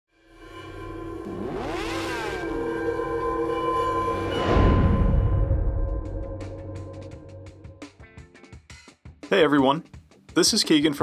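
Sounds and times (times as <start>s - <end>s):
sustained drone: 0.1s - 7.9s.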